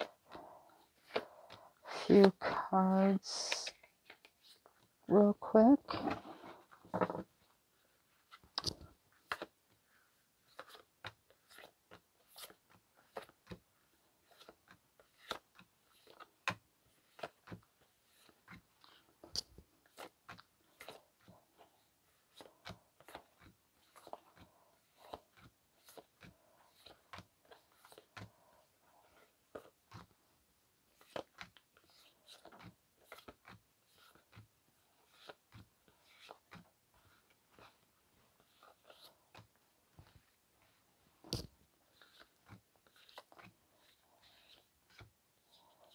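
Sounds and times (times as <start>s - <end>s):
cards being shuffled: 0.0s - 2.4s, 8.2s - 9.5s, 10.4s - 13.6s, 14.2s - 30.1s, 30.9s - 37.8s, 38.4s - 45.9s.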